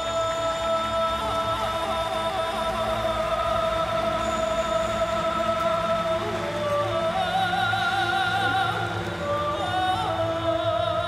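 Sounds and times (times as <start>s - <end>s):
man singing a long high note: 0.0s - 11.0s.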